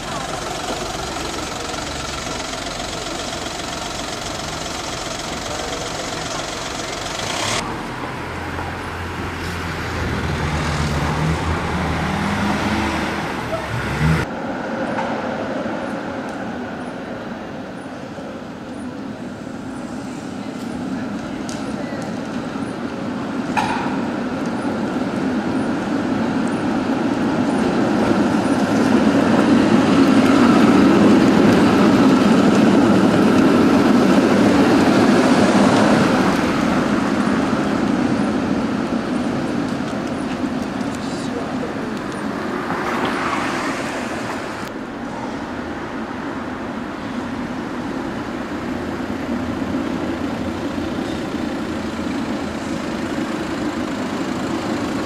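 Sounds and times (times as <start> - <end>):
loud vehicle passing: 0.0 - 17.4, 22.5 - 55.0
street traffic rumble: 0.0 - 55.0.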